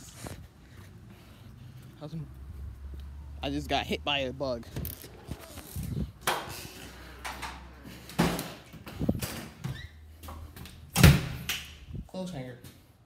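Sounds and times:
door opening and swinging shut: 7.2s - 10.0s, 10.6s - 11.5s.

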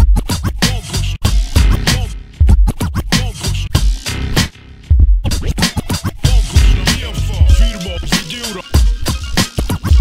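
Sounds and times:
turntable scratching: 0.0s - 4.5s, 5.2s - 10.0s
hip hop beat with kick and bass: 0.0s - 10.0s.

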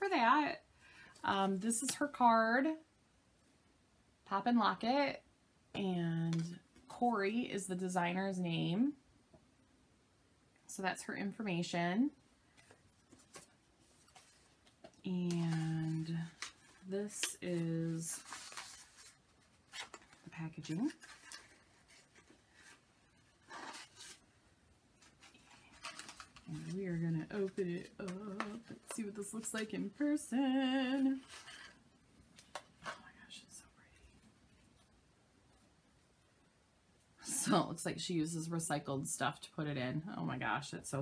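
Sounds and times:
paper card and items handled: 12.5s - 24.4s, 25.0s - 30.2s, 30.8s - 33.0s.

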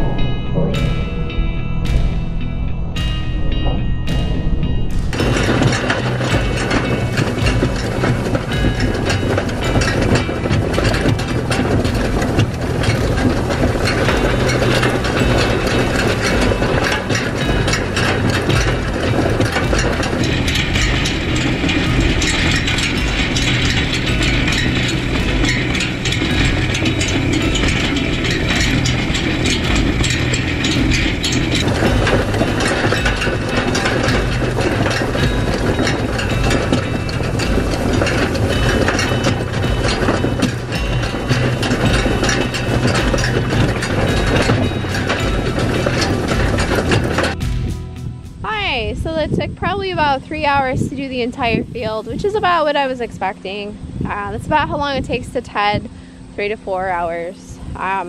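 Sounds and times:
tractor engine humming: 0.0s - 58.0s
hay rake clattering and rattling: 4.9s - 58.0s.

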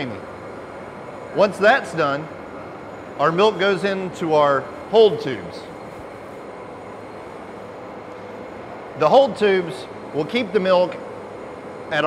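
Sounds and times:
machinery hum and hiss: 0.0s - 12.0s.

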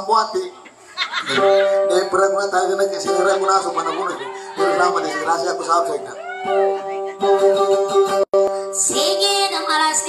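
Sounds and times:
held accompaniment tones: 1.3s - 9.5s.

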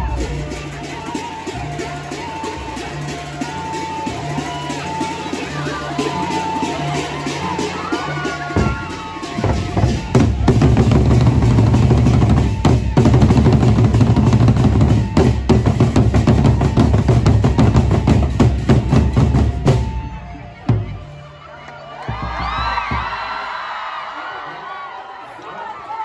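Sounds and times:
barrel drums beaten fast: 2.8s - 21.0s, 22.1s - 23.4s.

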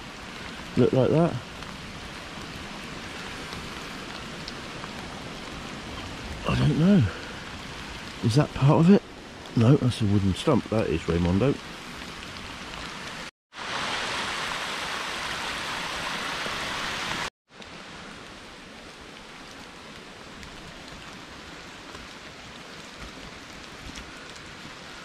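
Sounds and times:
rain hissing in woodland: 0.0s - 25.0s
water rushing down stone channel: 13.2s - 17.3s.

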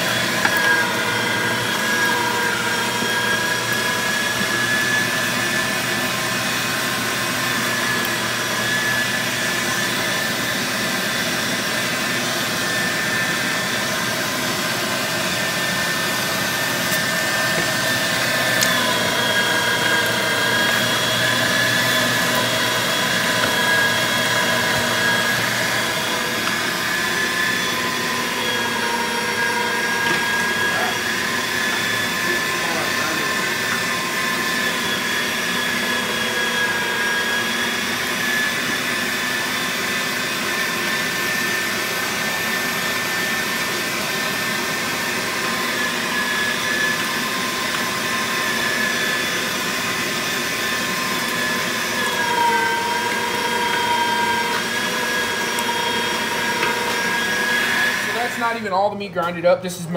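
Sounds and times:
electric meat grinder whining: 0.0s - 58.8s.

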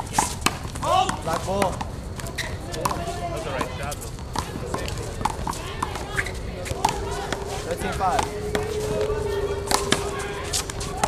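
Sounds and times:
background voices: 4.5s - 11.0s.

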